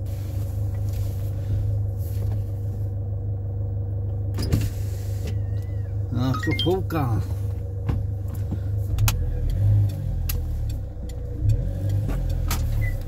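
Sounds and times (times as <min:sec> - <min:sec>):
truck engine idling: 0:00.0 - 0:13.0.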